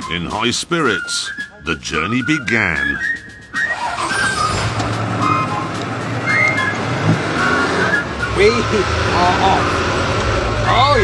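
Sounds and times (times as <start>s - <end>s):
music: 0.0s - 9.4s
lorry engines rumbling: 0.0s - 11.0s.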